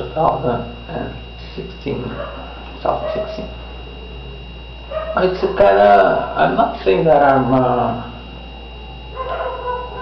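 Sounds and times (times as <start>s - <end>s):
high-pitched whine: 0.0s - 10.0s
low electrical hum: 0.0s - 10.0s.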